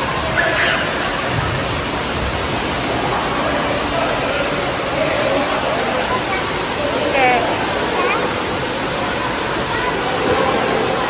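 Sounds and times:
rushing water echoing indoors: 0.0s - 11.0s.

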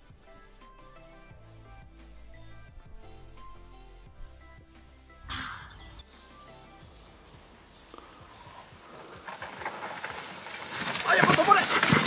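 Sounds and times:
bike tyres on dirt and leaves: 6.5s - 12.0s.

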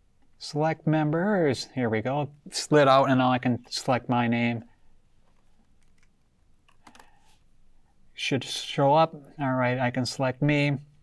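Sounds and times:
laptop keyboard typing: 5.8s - 7.2s.

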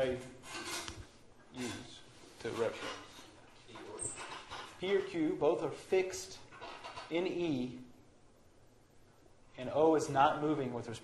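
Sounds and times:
man speaking: 1.6s - 3.0s, 4.8s - 6.5s, 7.1s - 7.9s, 9.6s - 11.0s.

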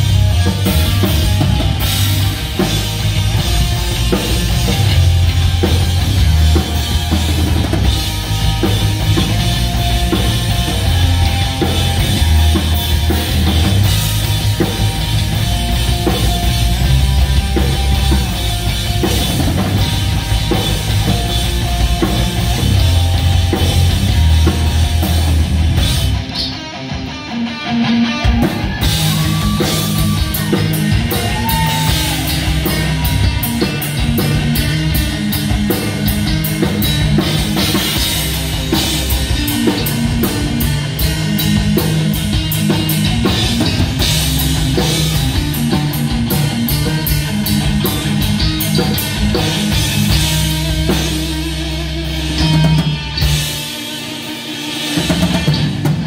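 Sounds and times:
bass guitar: 0.0s - 56.0s
drum kit: 0.0s - 56.0s
electric guitar: 0.0s - 56.0s.

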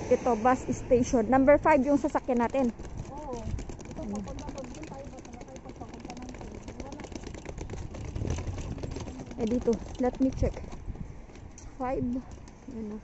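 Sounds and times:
low street rumble: 0.0s - 13.0s.

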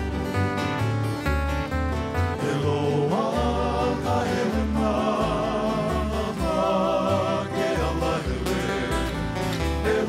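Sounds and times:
acoustic guitars strummed and plucked: 0.0s - 10.0s
upright bass: 0.0s - 10.0s
man singing: 2.4s - 9.2s, 9.8s - 10.0s.

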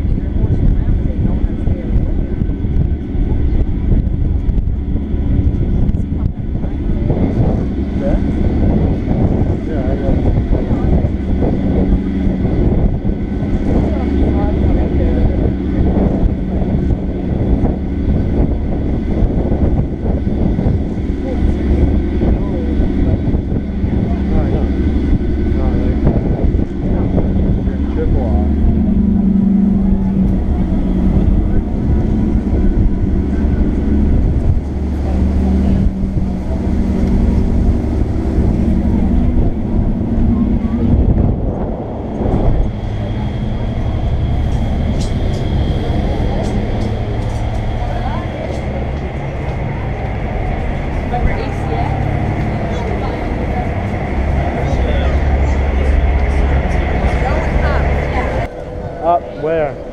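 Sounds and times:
ferry engines droning: 0.0s - 59.9s
passengers' voices: 0.0s - 59.9s
wind on microphone: 0.0s - 59.9s.

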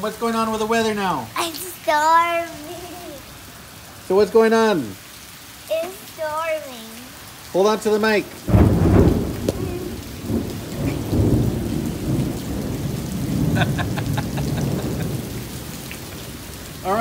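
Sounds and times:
rain falling: 0.0s - 17.0s
rolling thunder: 8.4s - 16.8s.

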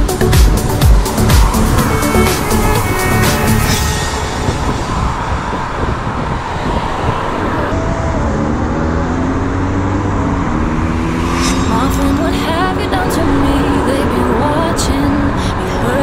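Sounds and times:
engine note rising in pitch: 0.0s - 6.8s, 7.5s - 15.0s
road traffic noise: 0.0s - 16.0s
wind on microphone: 0.0s - 16.0s.

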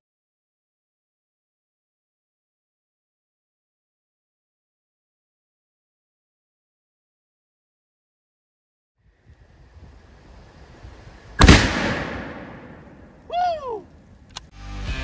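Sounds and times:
loud explosion boom: 11.4s - 13.1s
rifle shot: 11.4s - 13.1s
person whooping: 13.3s - 13.9s
rock music: 14.6s - 15.0s.

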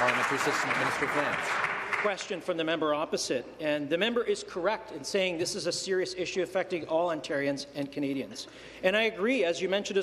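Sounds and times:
people applauding: 0.0s - 2.5s
person speaking: 0.0s - 10.0s.

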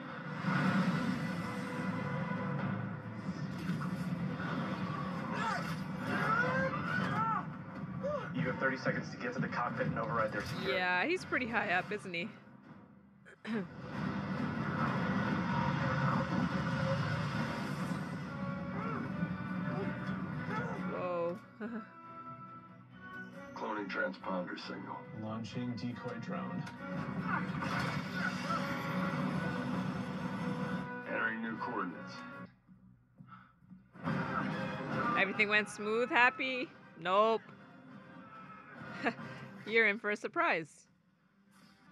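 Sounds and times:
soundtrack music: 0.0s - 12.8s, 13.7s - 32.6s, 33.8s - 40.2s.

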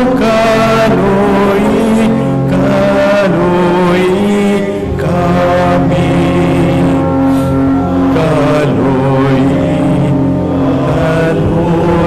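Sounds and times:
chant in long held notes: 0.0s - 12.0s.

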